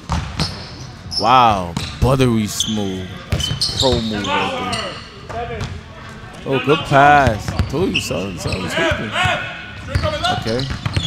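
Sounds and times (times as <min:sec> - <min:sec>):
voices: 0:01.1 - 0:11.0.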